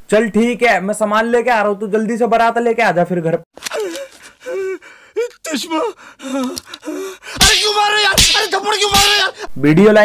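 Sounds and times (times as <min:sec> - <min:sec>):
man crying out and gasping: 0:03.6 - 0:09.6.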